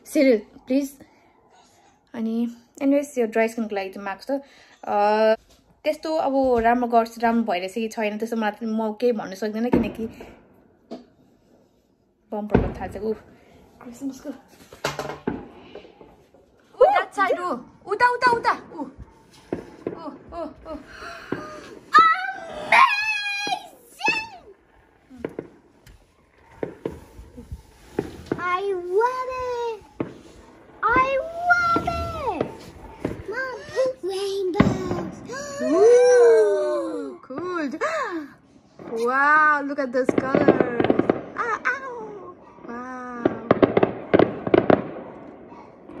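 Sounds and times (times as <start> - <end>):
fireworks bangs: 9.4 - 11.1, 12.4 - 46.0.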